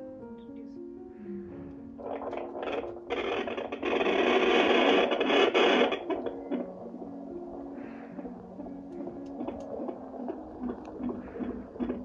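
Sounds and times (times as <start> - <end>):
doppler probe static hiss: 1.2 - 12.0.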